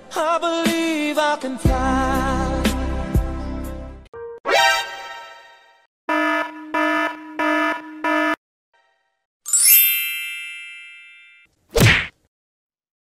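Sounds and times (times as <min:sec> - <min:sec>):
electronic alarm beeping: 0:06.1 - 0:08.4
bright metallic ding: 0:09.5 - 0:11.5.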